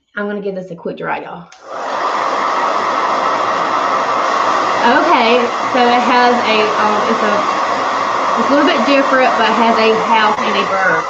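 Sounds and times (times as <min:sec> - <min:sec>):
hair dryer running: 0:01.5 - 0:11.0.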